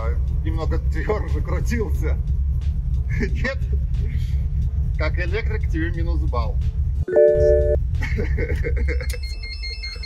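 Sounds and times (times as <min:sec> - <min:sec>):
short chime-like tone: 0:07.1 - 0:07.8.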